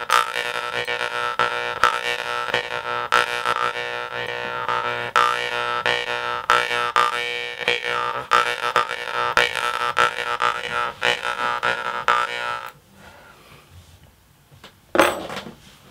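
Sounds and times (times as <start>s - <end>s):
jaw harp buzzing drone: 0.0s - 12.8s.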